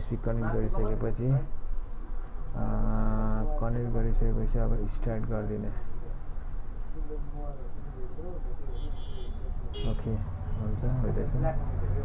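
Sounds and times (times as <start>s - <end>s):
man talking: 0.0s - 1.5s, 2.6s - 5.9s, 9.8s - 12.0s
low electrical hum: 0.0s - 12.0s.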